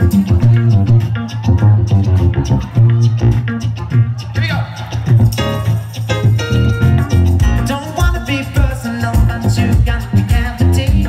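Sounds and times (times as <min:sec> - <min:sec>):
bass line: 0:00.0 - 0:11.0
electric guitar: 0:00.0 - 0:11.0
keyboard: 0:00.0 - 0:11.0
steady drum beat: 0:00.0 - 0:11.0.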